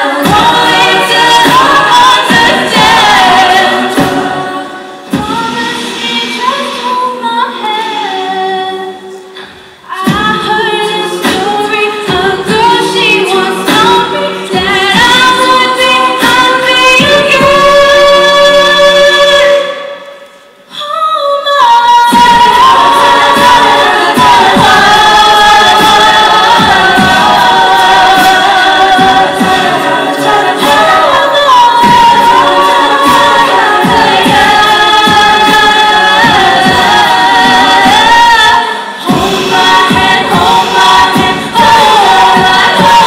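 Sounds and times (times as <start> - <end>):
a cappella group singing: 0.0 - 43.0.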